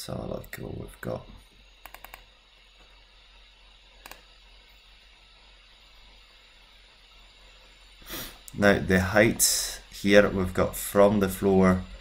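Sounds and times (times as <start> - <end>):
computer mouse clicks: 1.8 - 2.3, 4.0 - 4.2.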